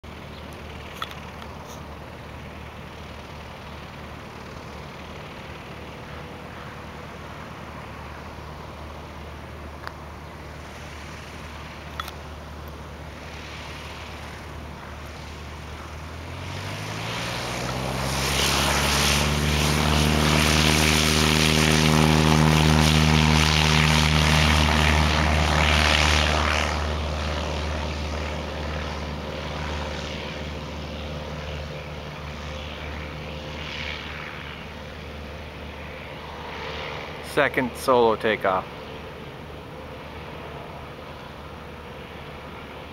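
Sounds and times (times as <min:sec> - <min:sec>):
light aircraft engine and propeller: 0:00.0 - 0:42.9.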